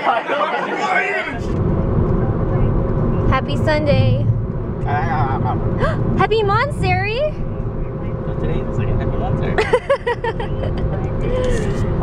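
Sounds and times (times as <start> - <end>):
car road and engine rumble: 0.7 - 12.0
person laughing: 9.6 - 12.0.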